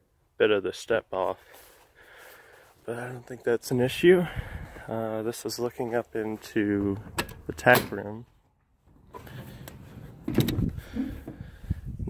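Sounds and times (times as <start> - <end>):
metal door unlatched and opened: 7.0 - 8.1, 9.2 - 10.7.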